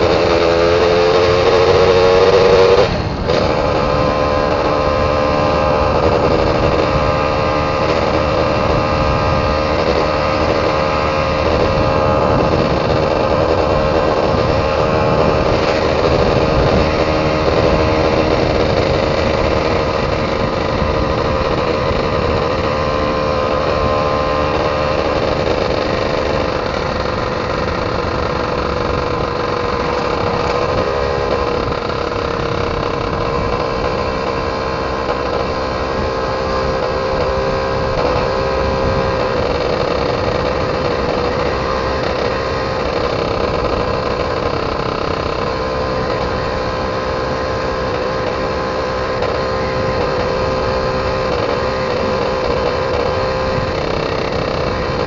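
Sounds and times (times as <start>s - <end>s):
motorcycle two-stroke engine running: 0.0s - 55.0s.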